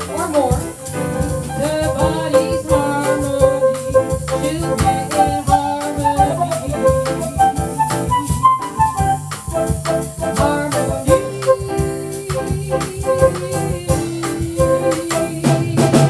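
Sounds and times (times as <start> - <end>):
bass: 0.0 - 16.0
drum kit: 0.0 - 16.0
piano: 0.0 - 16.0
shaker: 0.0 - 16.0
harmonica melody: 0.4 - 15.4.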